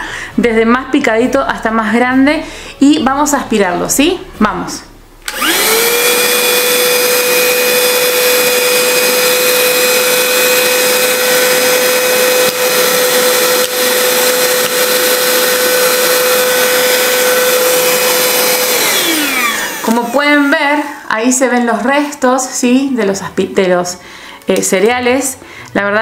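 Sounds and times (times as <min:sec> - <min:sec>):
handheld vacuum cleaner whine: 0:05.3 - 0:21.1.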